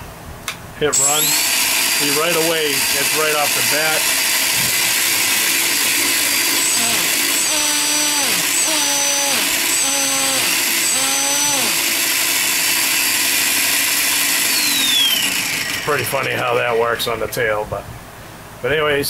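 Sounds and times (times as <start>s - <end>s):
rc helicopter motor whirring: 1.0s - 16.4s.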